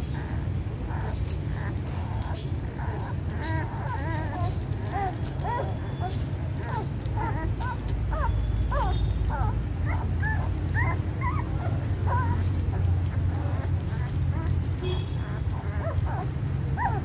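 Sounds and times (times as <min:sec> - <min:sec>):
newborn puppies squeaking: 0:00.0 - 0:17.0.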